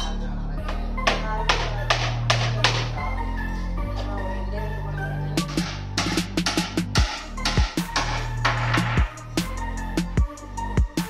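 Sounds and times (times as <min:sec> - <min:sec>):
electronic background music: 0:00.0 - 0:11.0.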